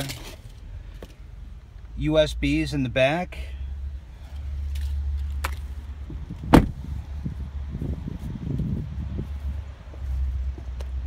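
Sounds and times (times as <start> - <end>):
wind rumble on microphone: 5.7 - 11.0.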